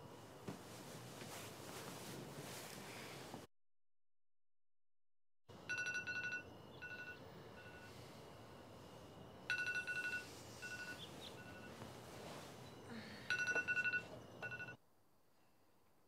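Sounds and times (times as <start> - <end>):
electronic ringer trilling: 9.5 - 11.8.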